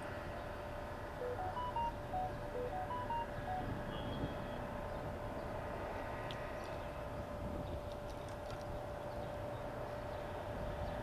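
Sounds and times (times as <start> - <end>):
electronic beep melody: 1.2 - 4.2.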